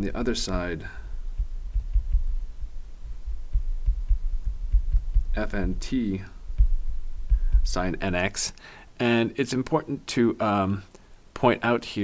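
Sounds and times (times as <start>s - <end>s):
low steady hum: 0.0s - 12.0s
stylus thudding on tablet: 0.4s - 8.1s.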